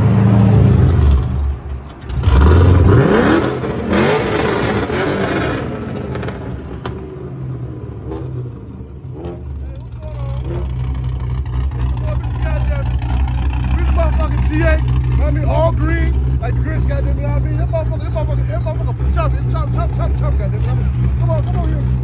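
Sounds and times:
car engine revving: 0.0s - 22.0s.

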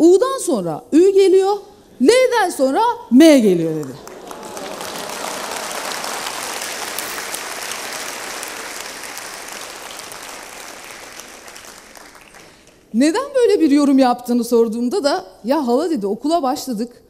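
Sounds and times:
audience applauding: 3.8s - 12.9s.

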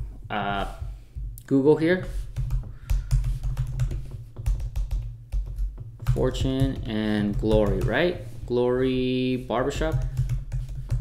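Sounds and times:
keyboard typing: 2.3s - 8.0s, 9.8s - 11.0s.

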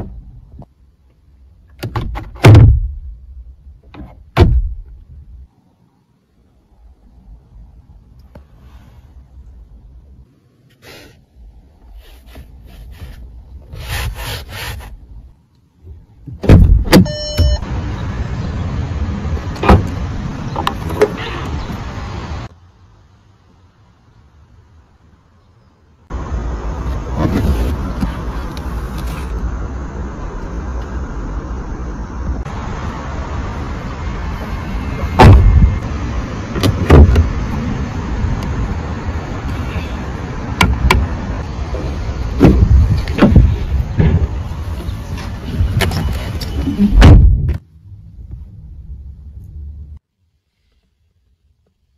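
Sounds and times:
steady outdoor hum: 0.0s - 51.9s
car door handle and latch clunks: 1.7s - 2.9s
short electronic beep: 17.0s - 17.7s
steady low rumble: 26.0s - 50.1s.

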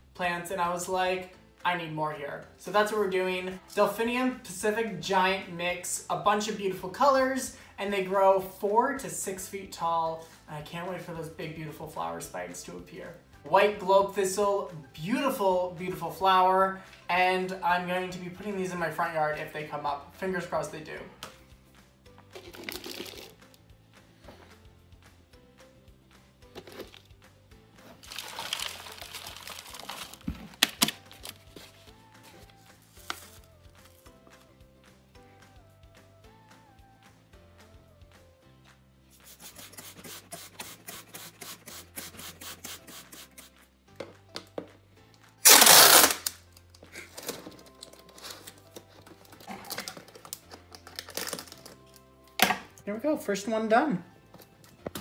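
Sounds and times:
soft background music: 0.0s - 55.0s
soil poured into plastic bottle: 22.4s - 23.4s
packing tape ripping off roll: 22.4s - 23.5s, 26.5s - 27.1s, 27.8s - 31.8s, 32.4s - 33.6s, 45.4s - 52.6s
plastic bottle crinkling: 22.4s - 23.5s, 26.5s - 27.1s, 27.9s - 31.8s, 45.4s - 52.6s.

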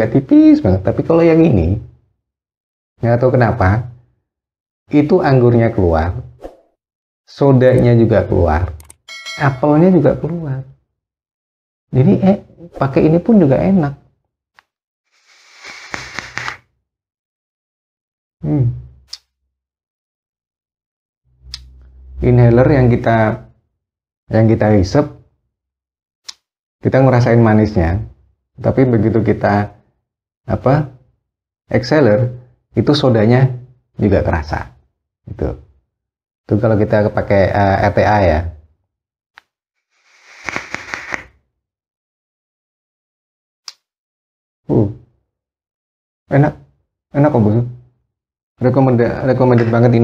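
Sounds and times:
air hissing through vape tank: 15.2s - 16.6s, 40.0s - 41.3s
e-liquid crackling on hot coil: 40.0s - 41.3s.

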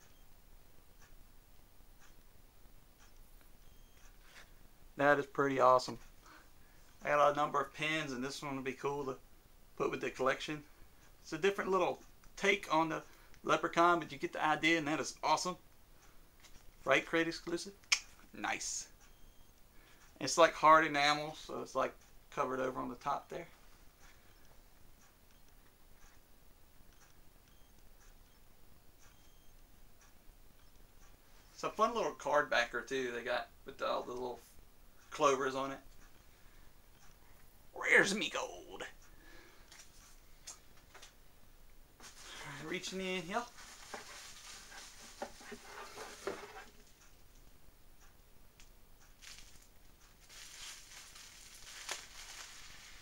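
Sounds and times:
sharp click: 17.8s - 18.2s
bubble wrap crinkling: 43.4s - 47.0s, 49.2s - 53.0s.

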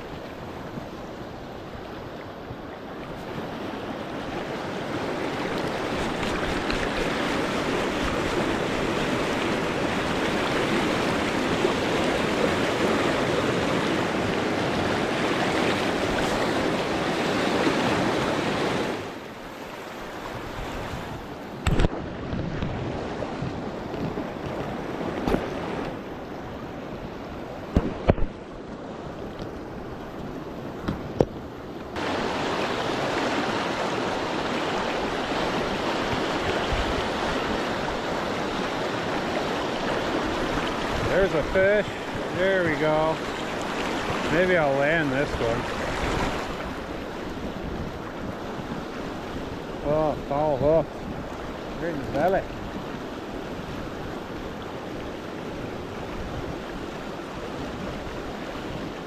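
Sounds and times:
river rapids rushing: 0.0s - 21.3s, 32.0s - 59.0s.

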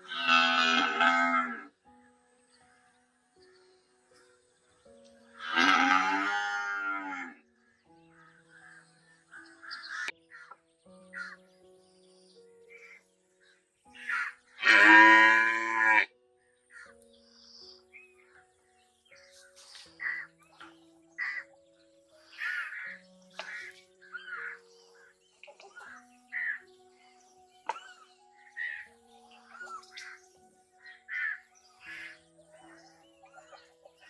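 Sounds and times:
cow mooing: 0.1s - 1.7s, 5.4s - 7.4s, 14.6s - 16.1s
crow cawing: 8.1s - 11.4s, 14.0s - 16.0s, 16.7s - 17.0s, 20.0s - 20.3s, 21.2s - 21.5s, 22.3s - 25.1s, 25.8s - 26.7s, 30.8s - 32.2s.

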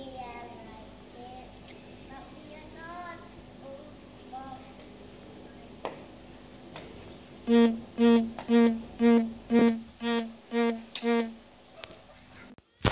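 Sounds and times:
distant children's chatter: 0.0s - 6.1s, 11.7s - 12.6s
steady low hum: 6.2s - 11.7s.

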